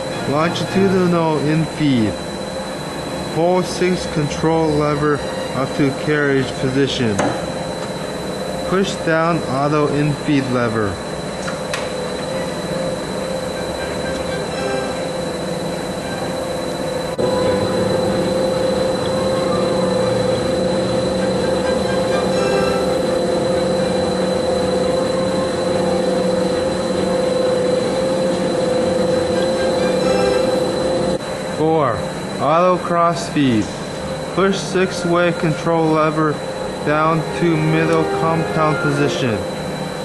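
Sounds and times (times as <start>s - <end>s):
lathe whining: 0.0s - 40.0s
machine hum: 0.0s - 40.0s.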